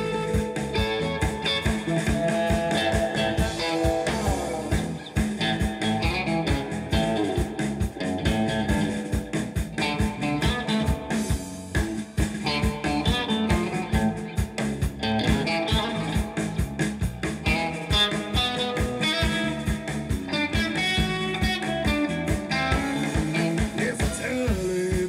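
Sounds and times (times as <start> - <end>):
bass guitar: 0.0 - 25.0
drum kit beat: 0.0 - 25.0
electric guitar: 0.0 - 25.0.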